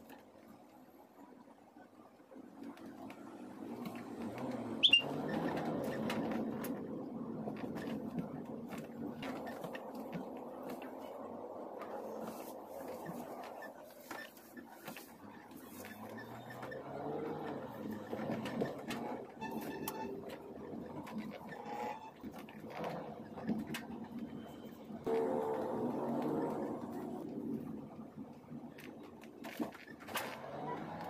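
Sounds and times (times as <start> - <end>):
car engine and road noise: 0.0 - 31.0.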